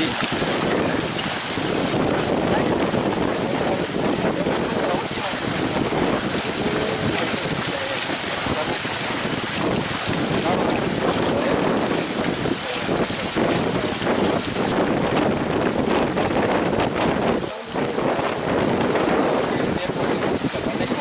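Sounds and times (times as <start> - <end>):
fountain water jets splashing: 0.0 - 21.0
wind buffeting microphone: 0.0 - 21.0.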